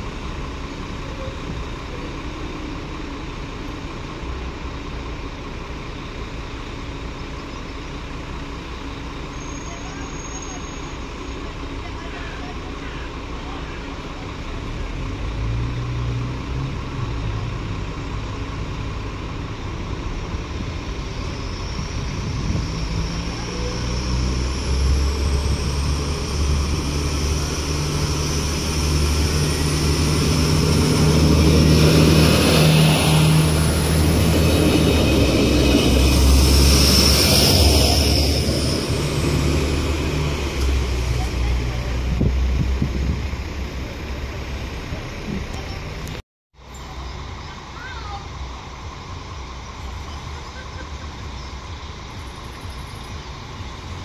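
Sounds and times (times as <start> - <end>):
diesel railcar passing: 0.0 - 54.0
high squeal from running gear: 9.3 - 11.4, 34.4 - 39.4, 49.6 - 53.5.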